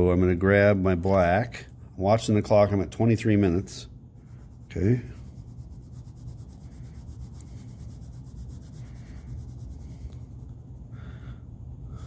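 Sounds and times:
pencil scratching on paper: 4.3s - 10.5s.

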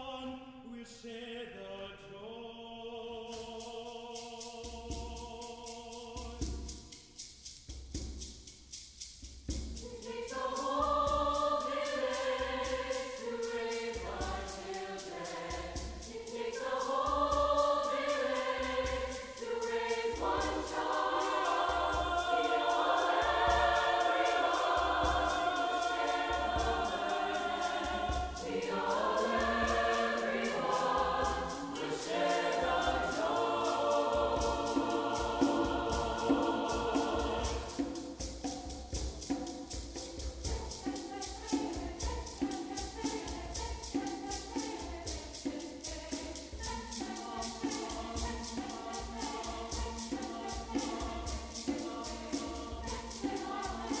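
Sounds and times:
mixed choir singing: 0.0s - 6.9s, 9.7s - 54.0s
hand drums beating: 6.1s - 54.0s.

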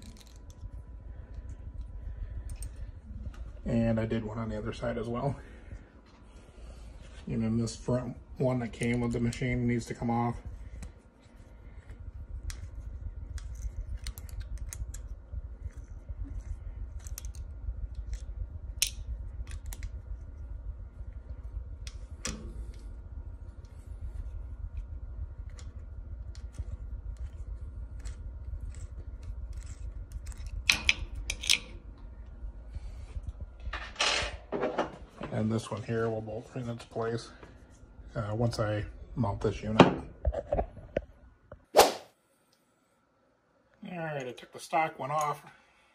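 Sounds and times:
steady low hum: 0.0s - 45.9s.

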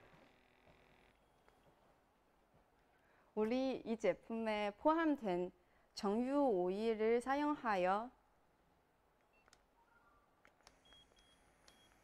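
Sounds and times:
faint short electronic beeps: 10.8s - 12.0s.

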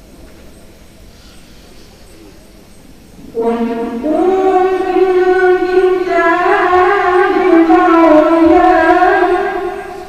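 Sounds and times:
boy chanting recitation: 1.1s - 10.0s.

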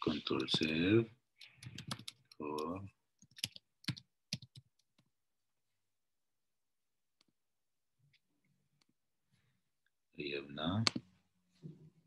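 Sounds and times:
laptop keys clicking: 1.4s - 5.1s.

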